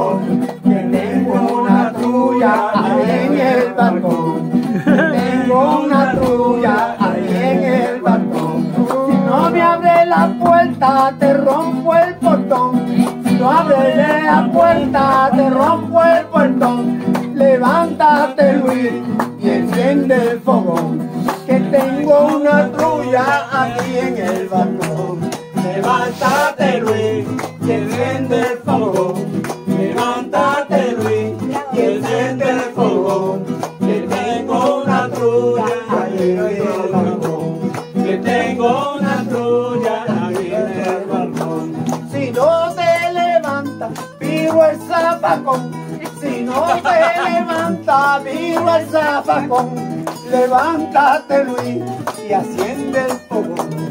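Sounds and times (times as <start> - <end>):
acoustic guitars playing folk music: 0.0 - 53.9
man singing: 0.0 - 53.9.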